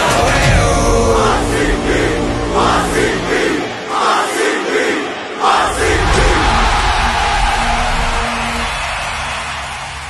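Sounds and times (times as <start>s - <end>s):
group shouting a chant: 0.0s - 9.4s
backing music: 0.0s - 10.0s.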